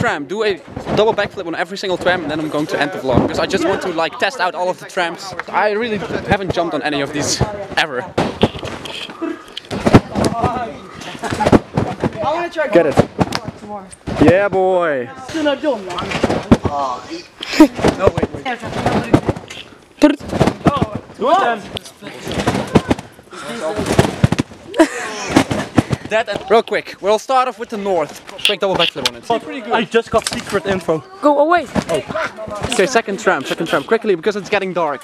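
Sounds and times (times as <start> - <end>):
sharp irregular thumps and knocks: 0.0 - 3.5, 5.3 - 14.7, 15.3 - 16.9, 17.6 - 24.7, 25.3 - 26.8, 31.6 - 33.6
voices: 0.0 - 35.0
thwacks of landing on trampolines: 20.2 - 21.1, 22.3 - 24.6, 25.3 - 26.6.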